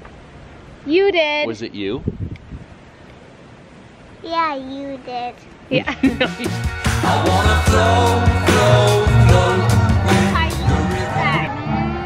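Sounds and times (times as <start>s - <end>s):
wind on microphone: 1.9s - 2.8s.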